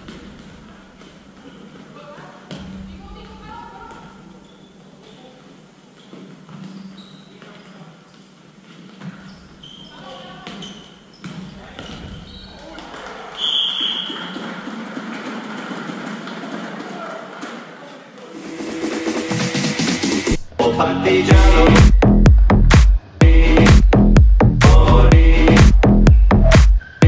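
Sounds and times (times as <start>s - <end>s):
dance music: 18.3s - 27.0s.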